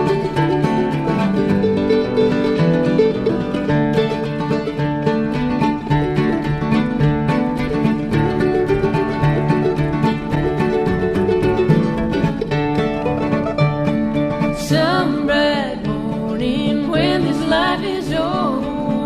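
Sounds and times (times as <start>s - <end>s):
bluegrass string band playing: 0.0s - 19.0s.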